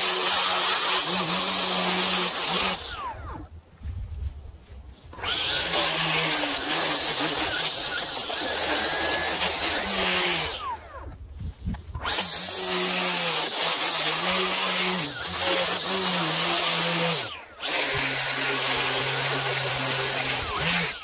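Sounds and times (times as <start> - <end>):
string trimmer running: 0.0 - 3.6, 5.1 - 21.0.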